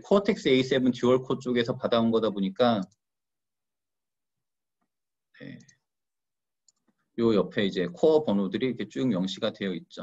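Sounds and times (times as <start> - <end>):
computer mouse clicks: 6.6 - 7.0.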